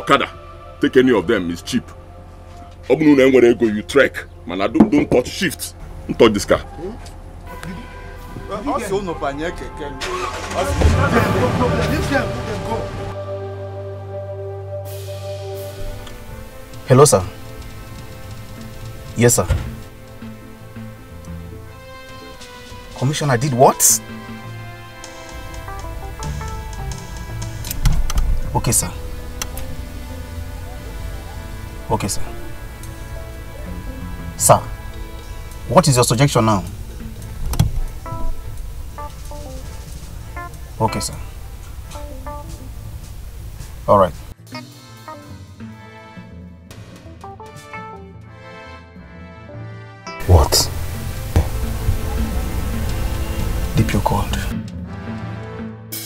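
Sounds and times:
men talking: 0.0s - 2.0s, 2.8s - 13.2s, 16.8s - 17.4s, 19.0s - 19.8s, 22.9s - 24.2s, 28.4s - 29.6s, 31.2s - 37.2s, 40.6s - 41.4s, 43.8s - 44.4s, 50.2s - 50.8s, 53.6s - 54.6s
background music: 0.0s - 56.0s
truck engine starting: 9.2s - 13.2s, 24.1s - 44.3s, 50.2s - 54.8s.

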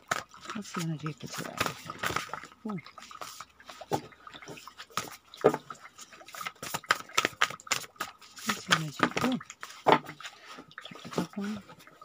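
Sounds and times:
cards being shuffled: 0.0s - 2.4s, 6.3s - 9.8s.

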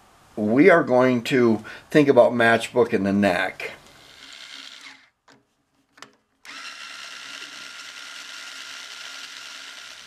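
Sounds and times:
string winder whirring: 3.8s - 5.1s, 6.4s - 10.0s.

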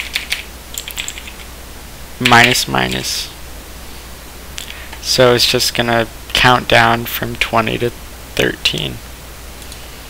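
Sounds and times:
keyboard typing clicks: 0.0s - 1.4s.

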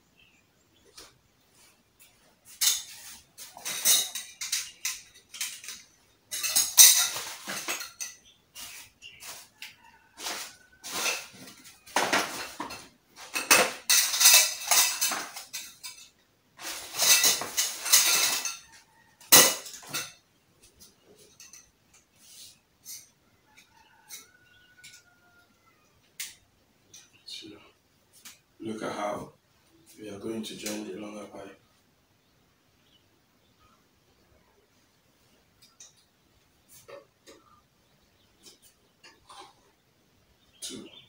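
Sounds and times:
metal pipes clinking and rattling: 2.5s - 9.4s, 10.2s - 20.2s, 21.2s - 22.0s, 39.0s - 39.6s.

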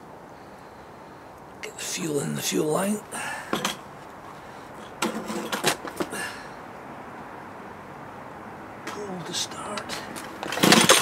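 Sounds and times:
clicks and knocks handling engine: 3.4s - 6.2s, 9.7s - 11.0s.

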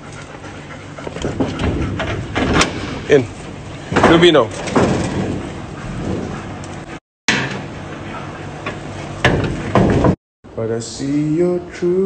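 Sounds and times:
dogs panting: 0.0s - 7.0s.

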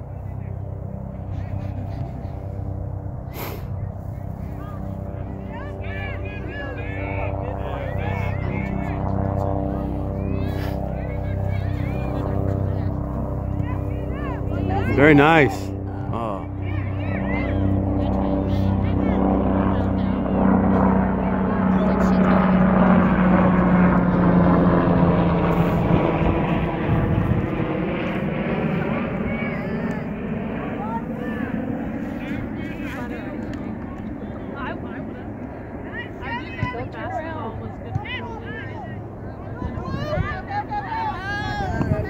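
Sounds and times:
aircraft engine drone: 0.0s - 42.0s
faint voices: 0.0s - 42.0s.

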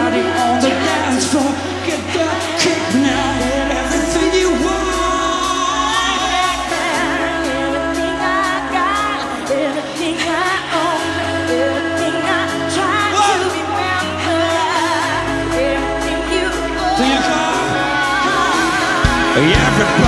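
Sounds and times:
dance-pop song: 0.0s - 20.0s.

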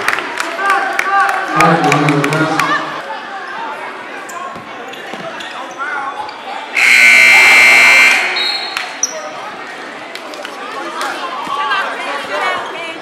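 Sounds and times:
crowd chatter: 0.0s - 13.0s
scoreboard buzzer horn: 6.8s - 8.4s.

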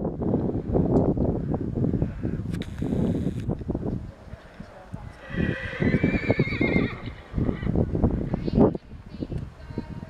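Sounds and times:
horse whinnying: 5.2s - 7.8s.

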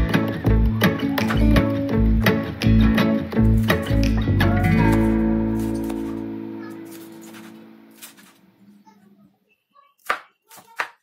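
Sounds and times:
knife chopping on wooden board: 4.9s - 6.2s, 6.9s - 8.4s, 10.0s - 11.0s.

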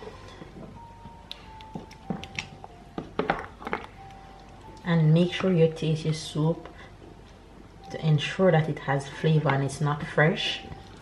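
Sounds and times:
faint background music: 0.0s - 11.0s.

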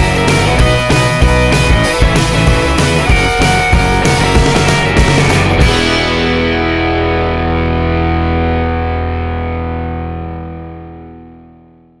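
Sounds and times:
rock music: 0.0s - 11.6s
distorted electric guitar chord: 0.0s - 12.0s.

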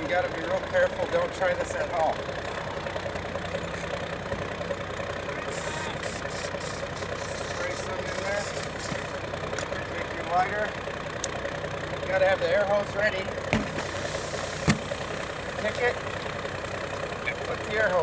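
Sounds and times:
engine-like hum: 0.0s - 18.0s
aerosol spray hissing: 5.6s - 9.2s.

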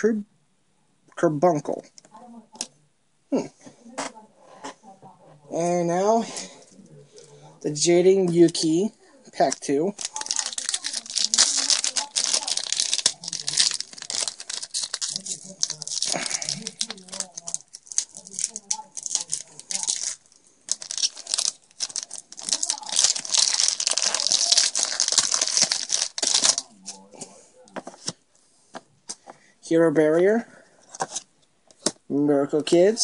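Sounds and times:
wrapper crinkling and tearing: 9.4s - 27.0s.

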